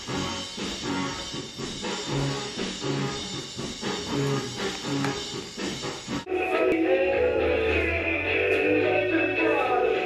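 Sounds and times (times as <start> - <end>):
music from cassette player: 3.8 - 10.0
song with long sung notes: 6.3 - 10.0.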